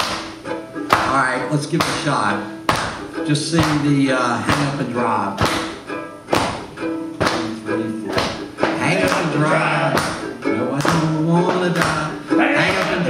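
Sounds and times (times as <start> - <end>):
banjo ukulele strumming: 0.0 - 13.0
people singing: 7.3 - 13.0.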